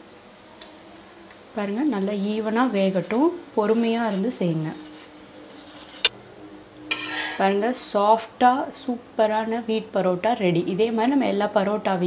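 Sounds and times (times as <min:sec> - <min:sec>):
flatbread sizzling on pan: 0:00.0 - 0:07.6.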